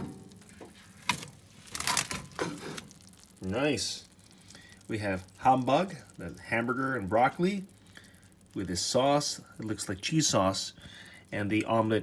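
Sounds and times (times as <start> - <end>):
plastic tray crackling and clicking: 1.0 - 2.9.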